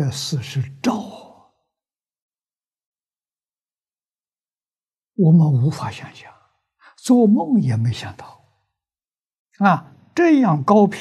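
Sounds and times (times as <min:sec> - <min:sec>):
man speaking: 0:00.0 - 0:01.4, 0:05.2 - 0:08.4, 0:09.6 - 0:11.0
breath: 0:06.8 - 0:07.0.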